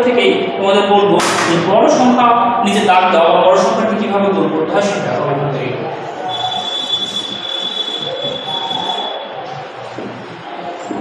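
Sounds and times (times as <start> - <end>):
steady high-pitched whine: 5.7 - 11.0.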